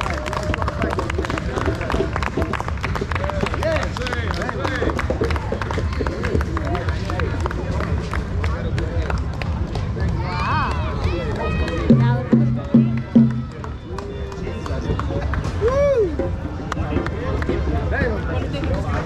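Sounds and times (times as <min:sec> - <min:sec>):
people talking: 0:00.0 - 0:19.0
loud low drum notes: 0:11.5 - 0:13.7
hand-drum music: 0:11.8 - 0:13.7.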